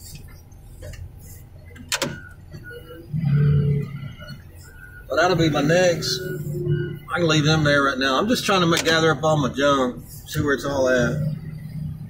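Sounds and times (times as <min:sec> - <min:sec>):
diesel engine of heavy machine: 0:00.0 - 0:12.0.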